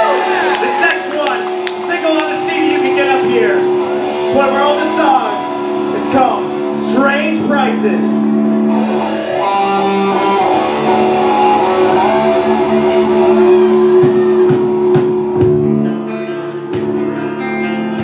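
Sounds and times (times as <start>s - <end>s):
bass guitar: 0.0s - 18.0s
electric guitars ringing chords: 0.0s - 18.0s
drum and cymbal hits: 13.8s - 15.8s.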